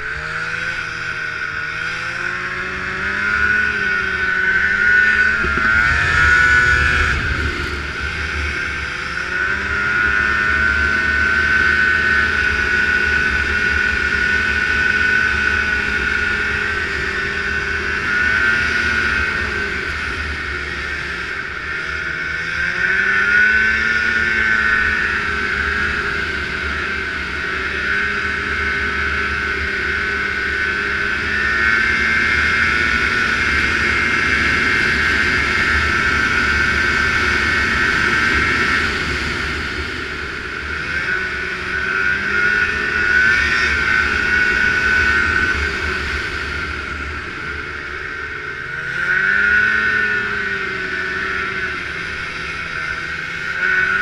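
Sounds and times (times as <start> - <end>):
snowmobile engine revving: 0.0 - 54.0
low rumble: 4.2 - 21.7.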